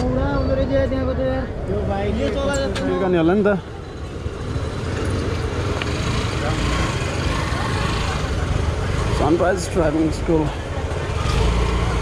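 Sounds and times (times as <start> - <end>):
scooter engine running: 4.2 - 12.0.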